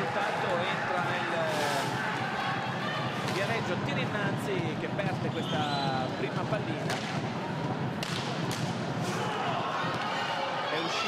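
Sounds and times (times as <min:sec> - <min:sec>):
crowd: 0:00.0 - 0:11.0.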